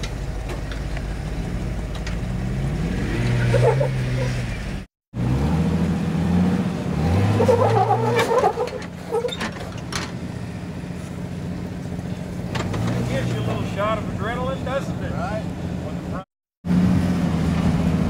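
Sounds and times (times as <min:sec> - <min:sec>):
engine revving: 0:01.3 - 0:09.3, 0:12.5 - 0:14.5, 0:16.6 - 0:18.0.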